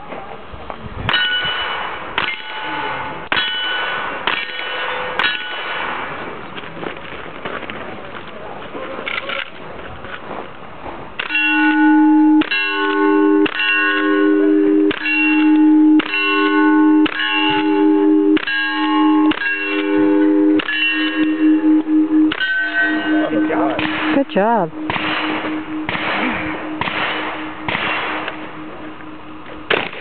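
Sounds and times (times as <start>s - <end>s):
steel target clanging: 18.4s - 30.0s
rifle shots: 24.9s - 28.2s, 29.7s - 30.0s.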